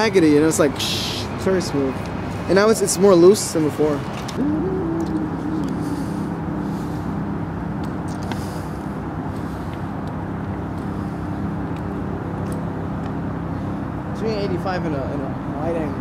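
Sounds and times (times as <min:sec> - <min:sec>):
traffic engine drone: 0:00.0 - 0:16.0.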